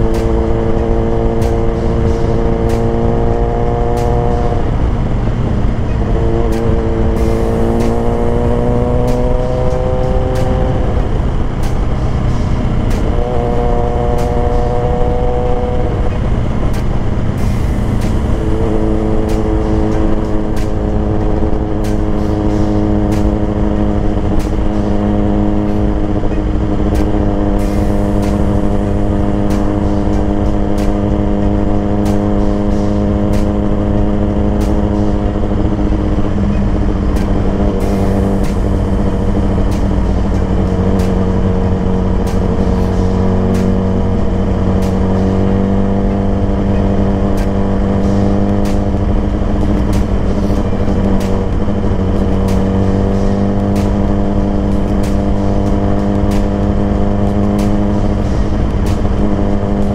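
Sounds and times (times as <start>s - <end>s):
wind rush: 0.0s - 52.6s
motorcycle engine running: 0.0s - 59.9s.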